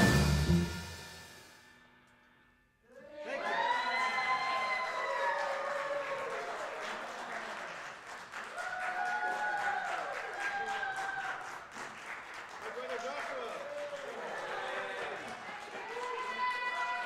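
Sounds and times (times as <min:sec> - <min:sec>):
whooping cheers: 0:02.9 - 0:07.5, 0:08.4 - 0:11.6, 0:13.0 - 0:17.0
audience applauding: 0:03.2 - 0:17.0.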